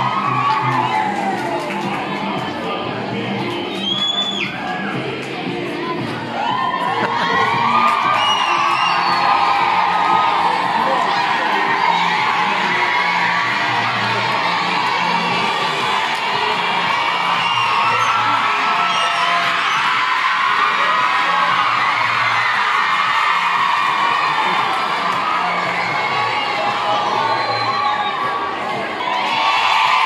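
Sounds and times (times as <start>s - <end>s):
girls cheering and shouting: 0.0s - 2.4s, 4.4s - 30.0s
music with repeating bass line: 0.0s - 27.5s.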